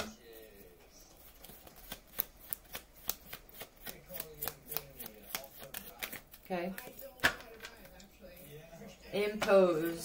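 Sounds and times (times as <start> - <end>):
cards shuffling with sharp slaps: 1.2 - 8.1.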